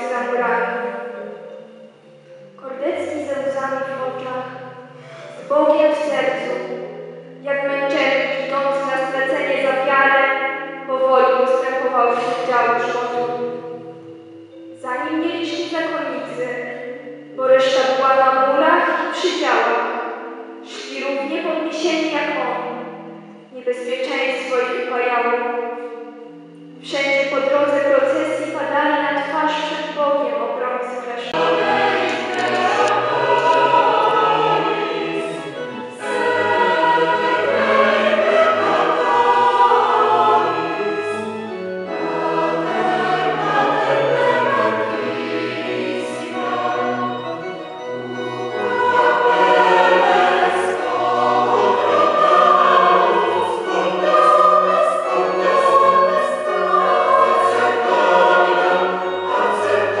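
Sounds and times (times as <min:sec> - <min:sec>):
mixed choir singing: 0:12.1 - 0:13.9, 0:31.2 - 1:00.0.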